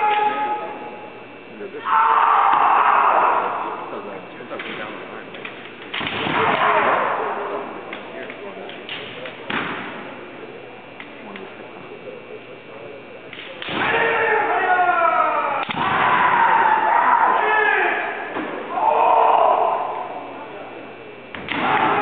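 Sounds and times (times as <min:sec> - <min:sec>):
fencers shouting: 0:00.0 - 0:01.1, 0:01.8 - 0:04.0, 0:06.1 - 0:07.8, 0:13.6 - 0:20.7, 0:21.4 - 0:22.0.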